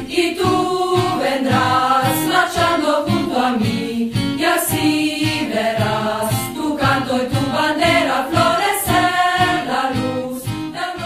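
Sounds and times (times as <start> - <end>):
group singing in chorus: 0.0 - 11.0.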